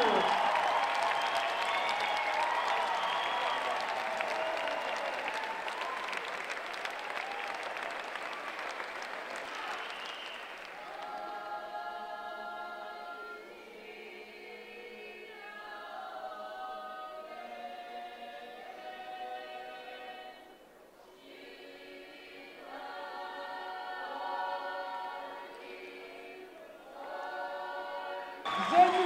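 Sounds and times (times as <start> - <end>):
choir singing slowly: 0.0 - 7.1, 9.2 - 29.0
audience applause: 0.0 - 11.4, 28.5 - 29.0.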